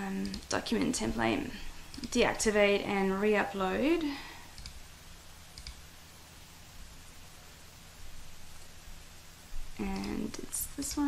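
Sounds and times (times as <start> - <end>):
faint low hum: 0.0 - 11.0
computer mouse clicking: 0.2 - 0.6, 1.9 - 2.2, 4.5 - 4.8, 5.5 - 5.8, 9.9 - 11.0.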